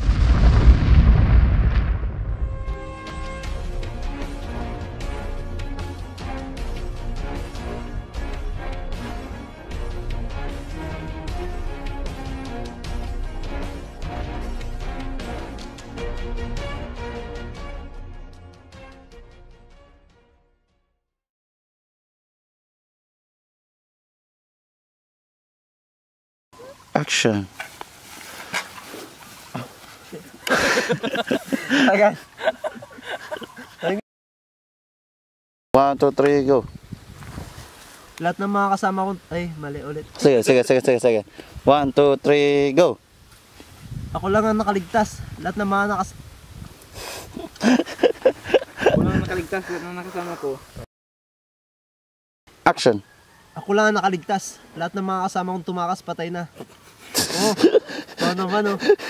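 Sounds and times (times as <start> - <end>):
loud deep rumbling: 0.0 - 3.6
stifled laughter: 29.6 - 34.0, 47.3 - 49.8, 57.0 - 59.0.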